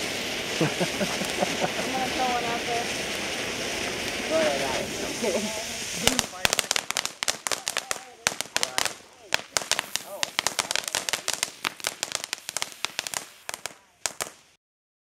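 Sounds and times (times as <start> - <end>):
firework fountain crackling: 0.0 - 14.6.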